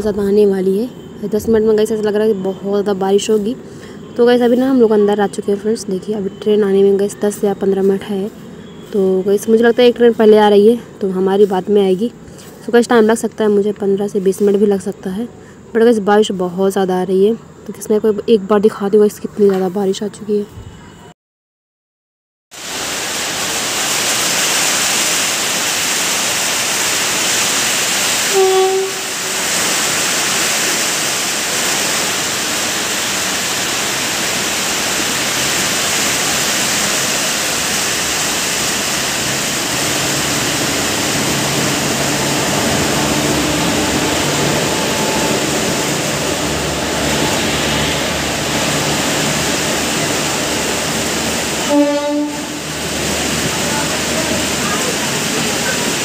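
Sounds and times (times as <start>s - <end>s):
train coaches rolling past: 0.0s - 20.3s, 22.8s - 56.0s
low train hum: 0.0s - 21.1s, 22.6s - 56.0s
heavy rain falling: 22.6s - 56.0s
train horn blasts: 28.2s - 29.4s, 51.5s - 53.0s.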